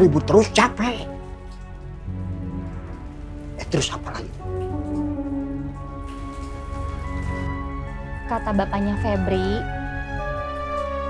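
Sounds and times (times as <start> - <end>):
sustained chord background music: 0.0 - 11.0.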